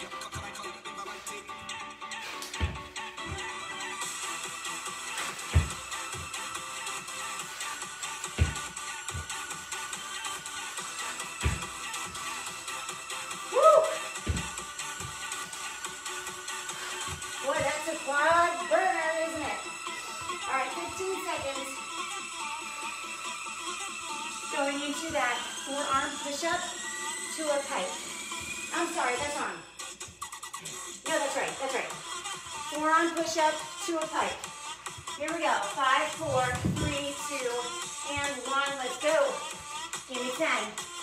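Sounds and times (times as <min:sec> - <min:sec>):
electronic workout music: 0:00.0 - 0:41.0
feet landing on wooden floor: 0:02.4 - 0:04.2, 0:04.9 - 0:06.4, 0:07.4 - 0:10.0, 0:10.8 - 0:12.2, 0:13.7 - 0:15.5.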